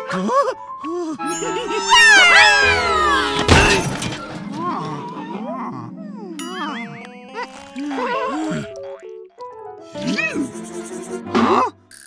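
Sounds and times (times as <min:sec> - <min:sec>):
cartoon music: 0:01.2 - 0:08.4
descending sliding falling effect: 0:01.3 - 0:04.5
sharp impact crash: 0:02.5 - 0:04.6.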